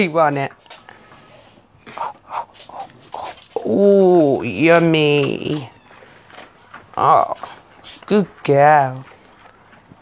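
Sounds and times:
pig grunting: 1.8 - 5.1.

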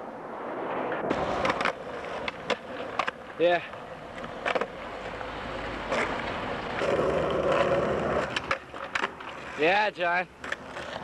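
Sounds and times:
skateboard wheels rolling on asphalt: 0.0 - 11.0
skateboard grinding on concrete curb: 0.9 - 11.0
skateboard clacks: 1.1 - 9.8, 10.4 - 11.0.

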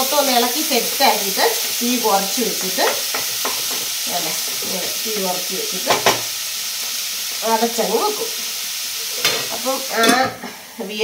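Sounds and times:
food sizzling in a wok: 0.0 - 11.0.

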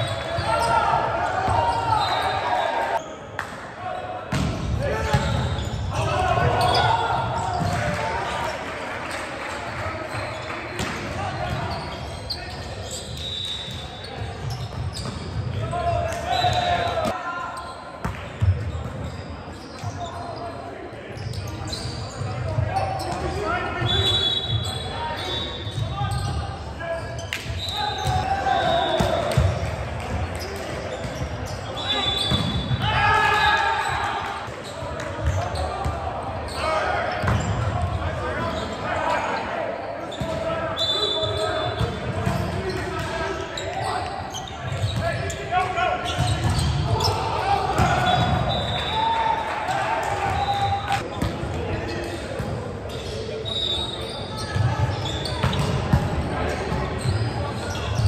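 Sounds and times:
players shouting: 0.0 - 3.0, 3.8 - 8.8, 27.6 - 29.6, 31.6 - 51.1
sneakers squeaking on court: 4.3 - 8.4, 10.0 - 29.6, 30.2 - 33.0, 33.8 - 39.4, 40.0 - 49.0, 50.2 - 58.0.

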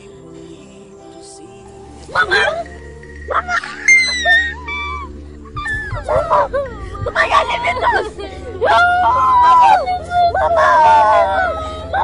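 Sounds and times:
low steady music: 0.0 - 12.0
children wailing: 2.1 - 2.7, 3.3 - 12.0.

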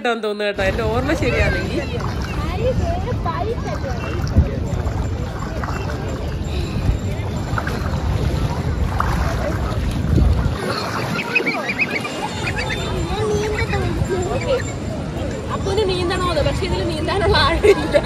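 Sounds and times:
voices of bathers: 0.6 - 18.0
water sloshing and splashing: 0.6 - 18.0
wind buffeting microphone: 0.6 - 18.0.

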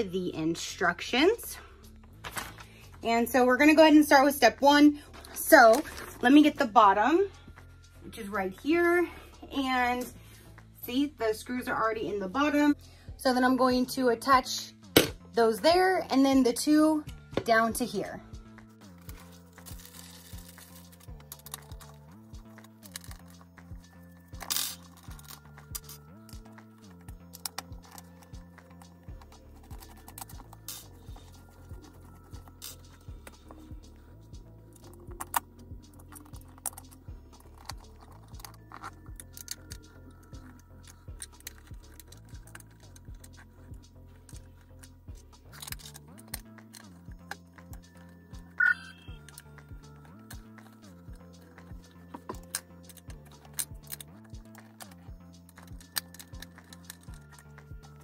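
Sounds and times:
background music with a beat: 18.2 - 58.0
clicks and rattles of metal parts: 44.2 - 48.1, 49.2 - 58.0.

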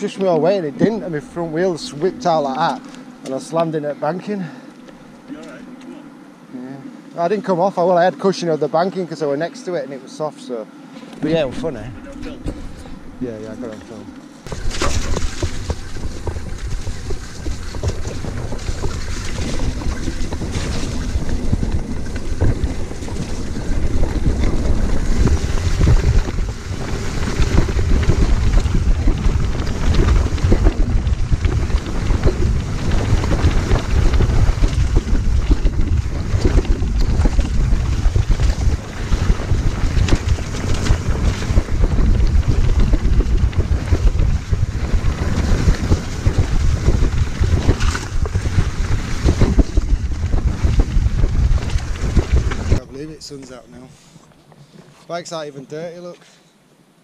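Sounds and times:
wind buffeting microphone: 0.0 - 4.2, 11.2 - 53.9
bike knocks and rattles: 14.5 - 52.8.

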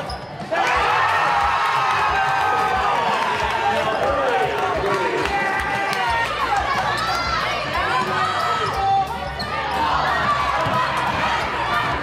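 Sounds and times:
people shouting: 0.5 - 12.0.

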